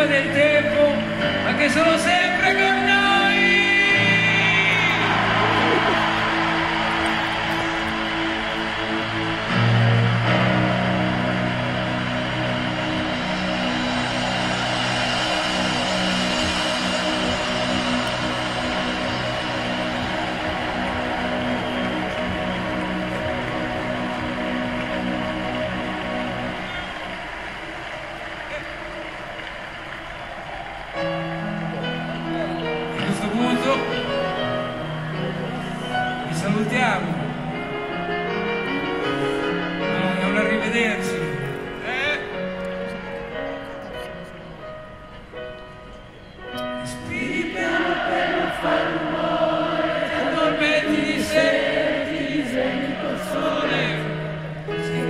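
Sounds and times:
man singing with vibrato: 0.0s - 5.3s
rock band sustaining chords: 0.0s - 43.8s
crowd cheering: 3.9s - 39.3s.

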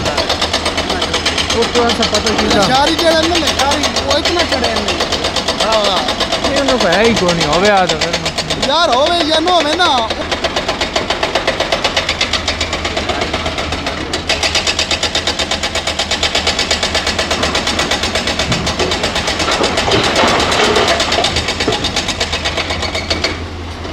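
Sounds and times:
excavator diesel engines throbbing: 0.0s - 23.9s
rock dumping into truck: 18.3s - 22.2s.

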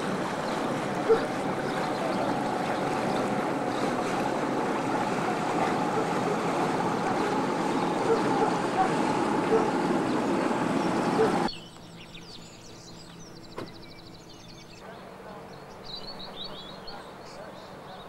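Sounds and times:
steady rushing noise: 0.0s - 11.5s
faint boat engine hum: 0.0s - 18.0s.

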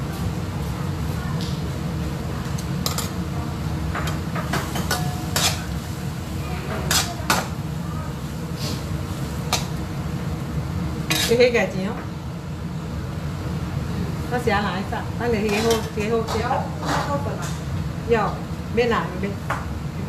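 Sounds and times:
steady low hum: 0.0s - 20.0s
metal ladle scraping wok: 4.9s - 5.7s, 11.1s - 11.4s.

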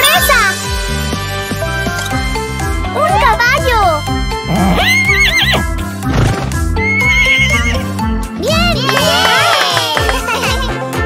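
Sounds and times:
children's background music: 0.0s - 11.0s
horse whinnying: 4.4s - 5.7s, 6.3s - 7.9s.

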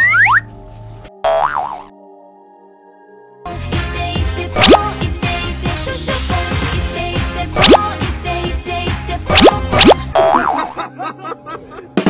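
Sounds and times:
boing-like wobbling tone: 0.0s - 0.4s, 1.2s - 1.9s, 4.6s - 4.8s, 7.6s - 7.8s, 9.3s - 10.8s
background music: 0.0s - 12.0s.

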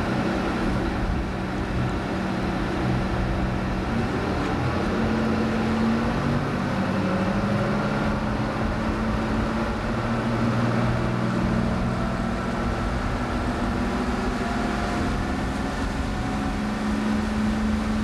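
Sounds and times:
boat engine droning: 0.0s - 18.0s.

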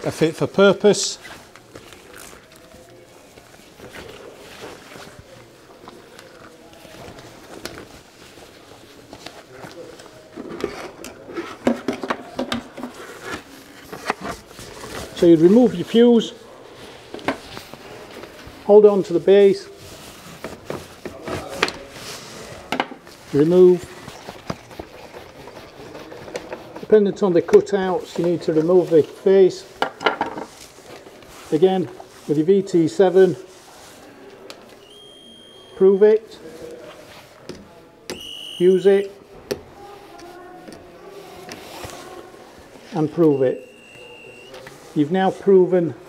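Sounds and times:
rubber gloves rubbing: 0.0s - 46.0s.

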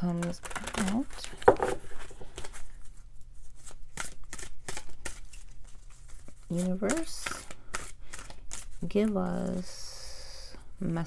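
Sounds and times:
cards being shuffled by hand: 0.0s - 9.7s.

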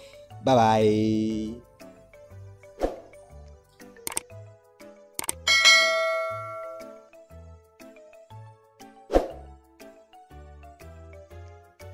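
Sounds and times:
background music with low beat: 0.6s - 7.1s
bright bell ding: 5.5s - 7.1s.

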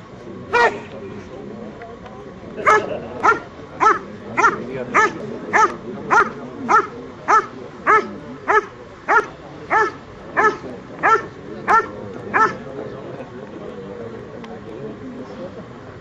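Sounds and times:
dog barking rhythmically: 2.6s - 12.6s.

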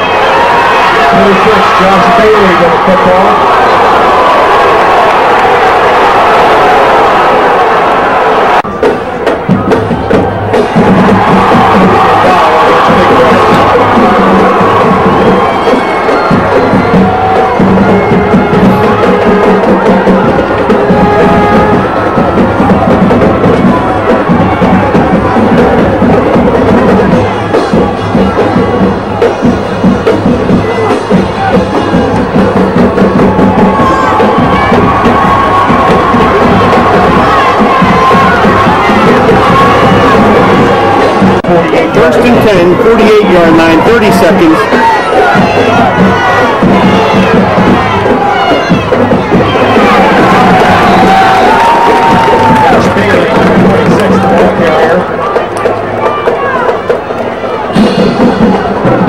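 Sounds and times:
band music playing: 0.0s - 59.0s
stadium crowd cheering and chattering: 0.0s - 59.0s.

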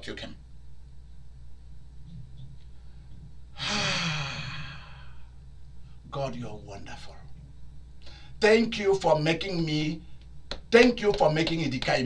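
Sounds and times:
man sighing: 3.6s - 5.2s.

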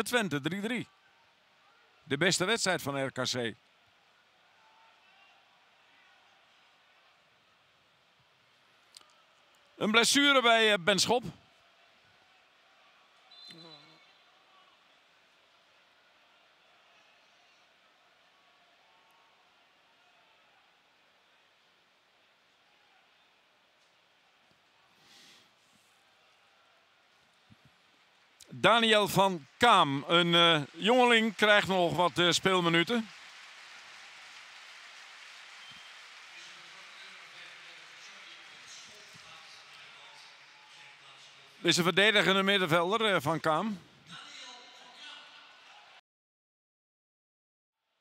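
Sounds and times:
distant stadium crowd: 0.0s - 46.0s.

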